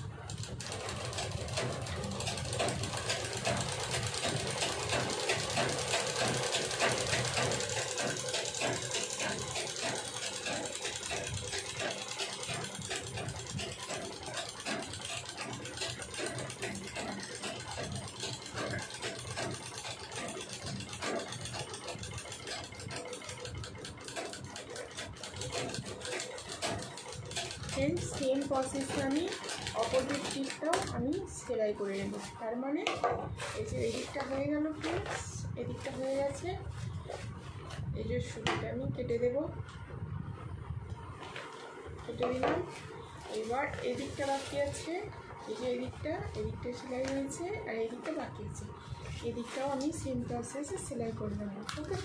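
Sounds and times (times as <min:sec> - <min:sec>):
sewing machine stitching: 0:00.2 - 0:31.2.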